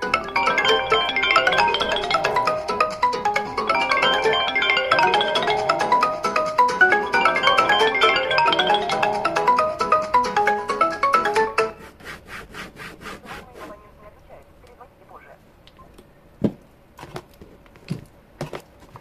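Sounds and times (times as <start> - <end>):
smartphone ringtones: 0.0 - 11.7.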